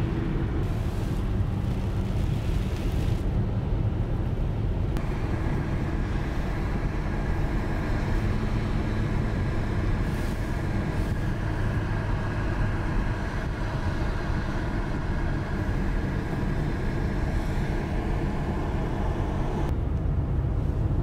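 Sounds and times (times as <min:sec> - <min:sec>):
tyre and engine rumble: 0:00.0 - 0:21.0
road hiss: 0:00.6 - 0:03.3, 0:05.0 - 0:19.7.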